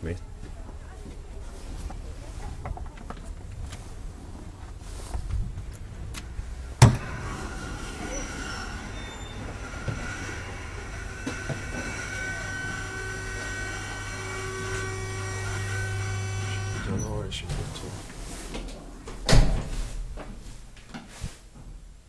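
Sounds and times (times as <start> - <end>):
elevator hum and whine: 3.3 - 20.8.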